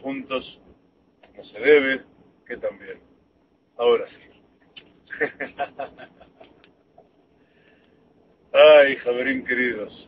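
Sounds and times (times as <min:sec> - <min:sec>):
man laughing softly: 0:05.1 - 0:06.6.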